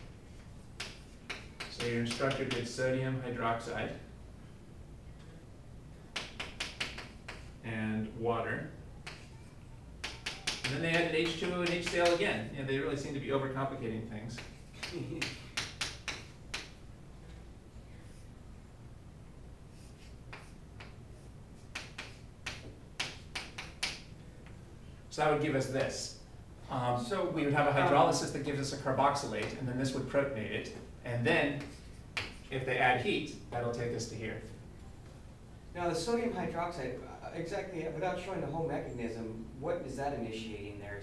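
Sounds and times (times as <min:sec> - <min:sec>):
chalk tapping and scratching on chalkboard: 0:00.7 - 0:02.8, 0:06.1 - 0:07.6, 0:09.0 - 0:12.2, 0:14.3 - 0:16.8, 0:19.7 - 0:24.1, 0:31.6 - 0:32.6
chalk scraping on chalkboard: 0:19.7 - 0:23.9, 0:31.6 - 0:32.5.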